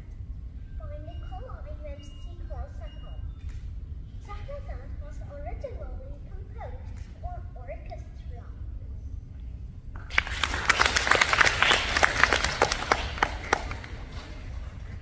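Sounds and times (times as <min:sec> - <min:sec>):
audience applauding: 0:10.0 - 0:15.0.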